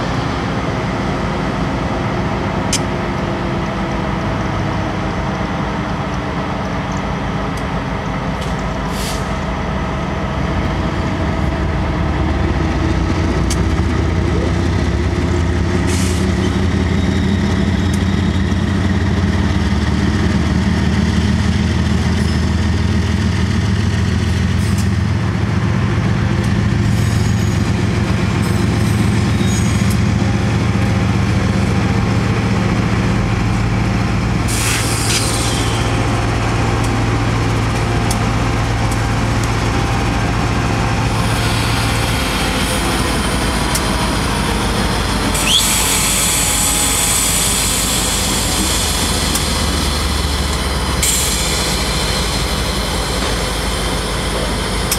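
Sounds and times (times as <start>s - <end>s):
diesel locomotive engines droning: 0.0s - 54.9s
sharp hiss: 34.5s - 35.9s, 51.0s - 53.6s.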